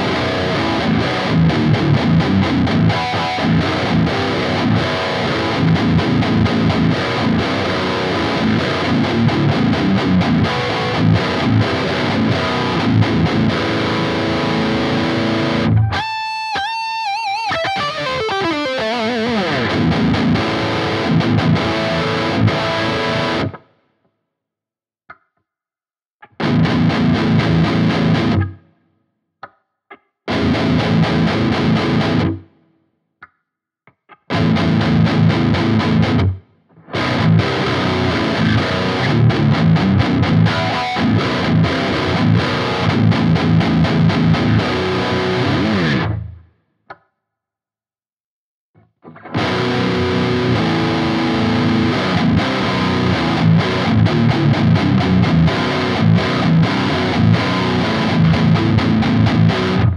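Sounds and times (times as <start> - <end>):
distorted electric guitar riffs: 0.0 - 23.7, 26.2 - 28.8, 30.3 - 32.6, 34.1 - 46.4, 48.8 - 59.9.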